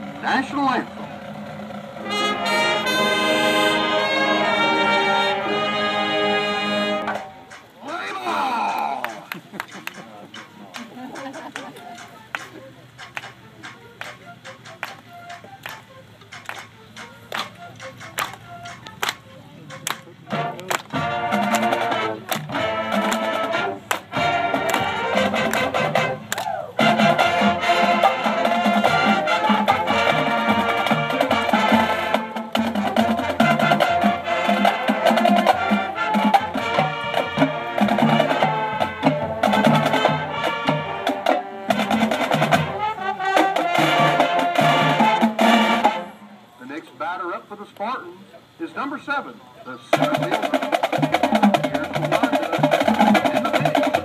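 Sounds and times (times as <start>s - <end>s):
marching band playing: 0.0s - 47.7s, 48.4s - 54.0s
sharp percussion taps: 7.1s - 7.8s, 9.0s - 40.3s.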